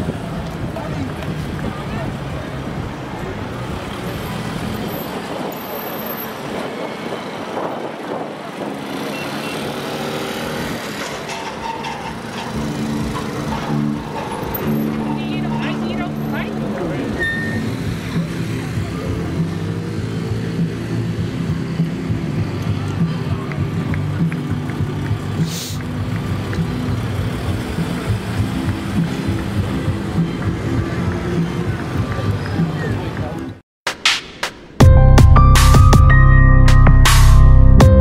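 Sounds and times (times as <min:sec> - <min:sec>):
ambulance van moving slowly: 0:00.0 - 0:33.6
crowd chatting: 0:00.0 - 0:33.6
traffic: 0:00.0 - 0:38.0
held musical notes: 0:11.3 - 0:17.9.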